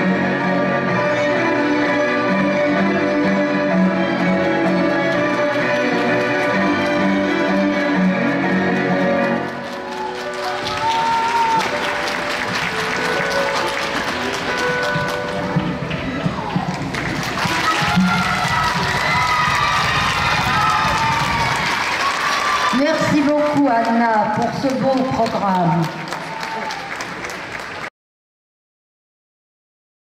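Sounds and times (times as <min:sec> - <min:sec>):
recorded music: 0:00.0 - 0:21.8
audience applauding: 0:04.1 - 0:27.9.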